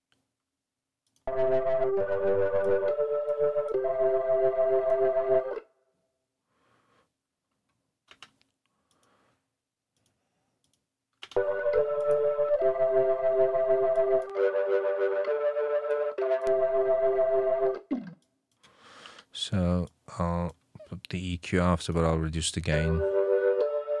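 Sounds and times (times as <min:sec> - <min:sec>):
overdriven organ chords: 0:01.3 - 0:05.6, 0:11.4 - 0:17.8, 0:23.0 - 0:24.0
faint mouse clicks: 0:08.1 - 0:09.2.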